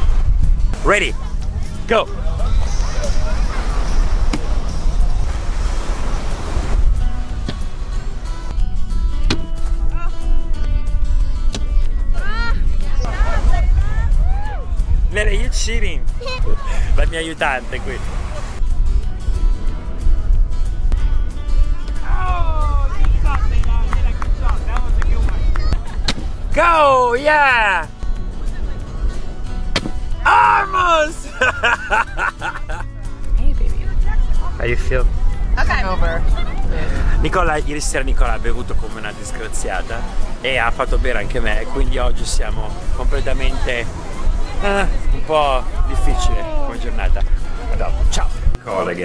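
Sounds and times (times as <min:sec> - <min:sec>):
wind buffeting microphone: 0:00.0 - 0:30.3, 0:31.8 - 0:48.6
background music with held notes: 0:00.0 - 0:49.0
steady low rush: 0:00.0 - 0:49.0
surf hiss: 0:01.8 - 0:08.4, 0:14.9 - 0:18.6
sharp knocks: 0:09.2 - 0:09.6
bean bag thud on board: 0:29.7 - 0:30.0.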